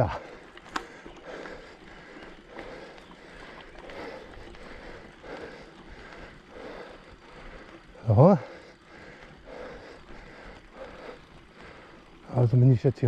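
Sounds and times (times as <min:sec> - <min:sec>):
mountain bike rolling on dirt trail: 0:00.0 - 0:13.0.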